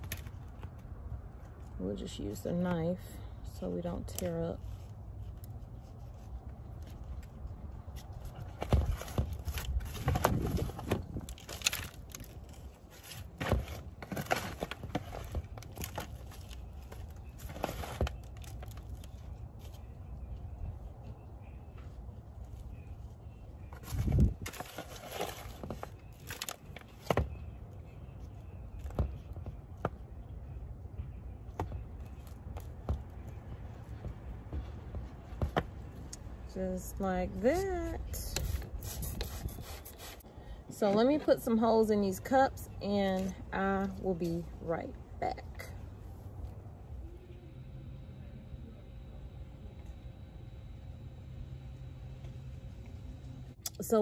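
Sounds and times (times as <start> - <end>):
low steady rumble: 27.3 - 54.0.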